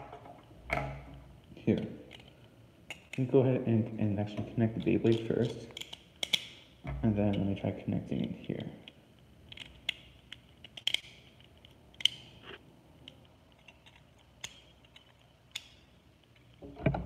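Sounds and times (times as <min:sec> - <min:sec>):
plastic parts clicking: 0:05.1 - 0:06.6, 0:08.2 - 0:12.3.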